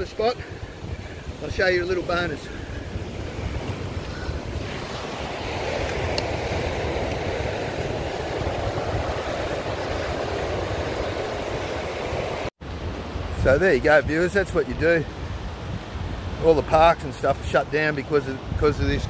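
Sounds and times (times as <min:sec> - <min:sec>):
surf breaking on stony shore: 0:00.0 - 0:16.9
wind on microphone: 0:00.0 - 0:19.0.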